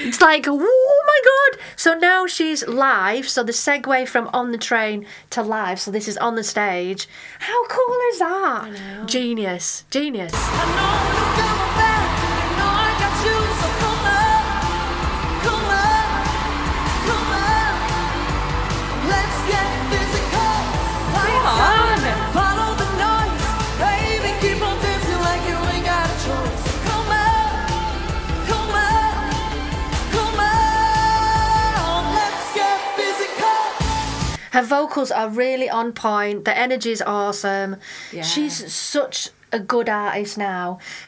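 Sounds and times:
woman singing pop song live: 10.4 - 18.2, 19.0 - 34.0
bass and beat: 10.4 - 32.5.

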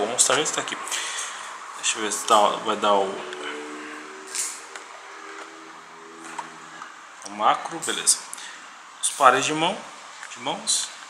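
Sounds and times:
low voice humming: 2.1 - 6.0.

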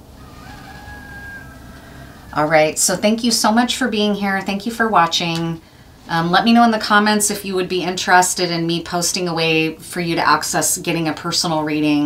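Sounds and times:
rooster crowing: 0.0 - 2.7
room background hum: 0.0 - 12.0.

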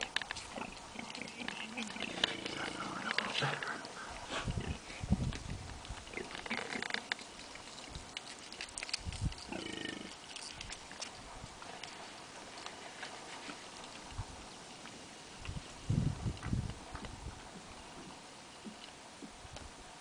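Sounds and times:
hooves clicking on rock: 0.0 - 19.8
warthogs grunting: 0.4 - 5.0, 6.0 - 7.1, 9.5 - 10.2.

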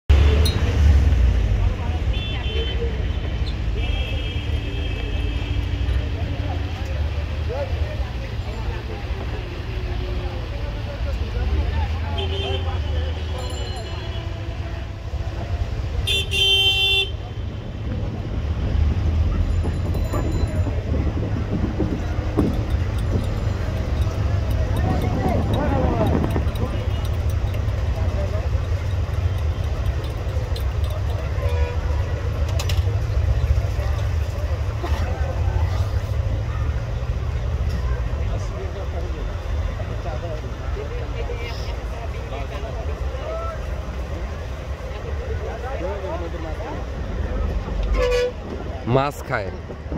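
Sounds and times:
people's voices: 0.1 - 49.9
vehicle horns tooting: 2.1 - 6.0, 12.1 - 14.9, 16.0 - 17.6, 31.1 - 32.2, 47.9 - 48.5.

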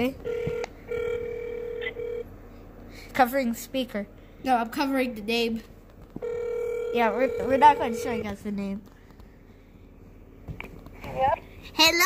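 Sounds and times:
phone ringback tone beeps: 0.3 - 2.2, 6.2 - 8.2.

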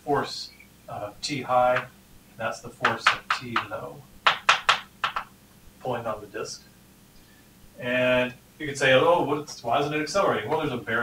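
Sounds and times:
chalk tapping on blackboard: 1.7 - 1.9, 2.8 - 5.3.

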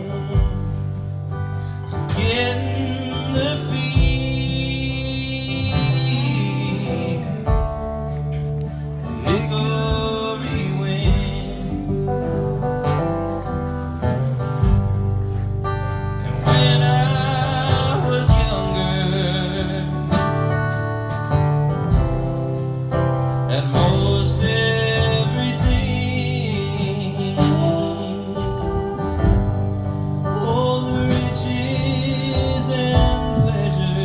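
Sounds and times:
man singing: 0.0 - 14.1, 16.0 - 22.6, 23.3 - 34.0
strummed acoustic guitar: 0.0 - 34.0.

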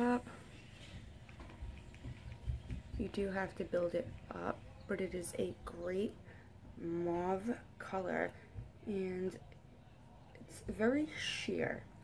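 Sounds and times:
soft low bumps: 0.4 - 5.8.

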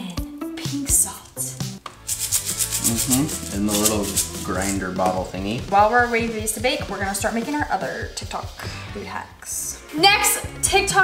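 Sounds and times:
background music: 0.0 - 11.0
salt grinder gritty ticks: 2.1 - 5.2.

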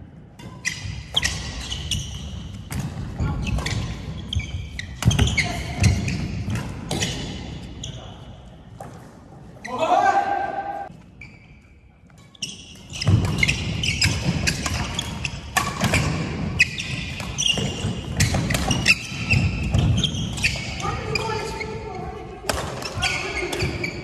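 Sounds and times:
sneakers squeaking: 0.4 - 10.2, 10.8 - 24.0
racket hitting shuttlecock: 12.1 - 20.6, 22.4 - 24.0.

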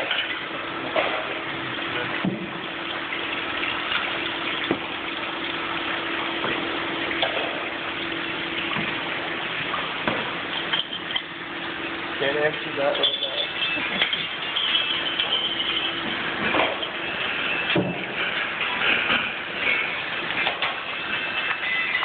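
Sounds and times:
bottles clinking and knocking: 0.0 - 4.9, 9.8 - 22.0
machine hum: 0.0 - 22.0
water rushing: 0.0 - 22.0.

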